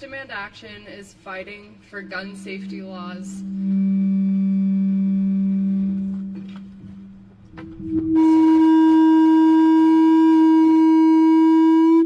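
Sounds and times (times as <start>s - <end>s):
microphone feedback howl: 2.5s - 12.0s.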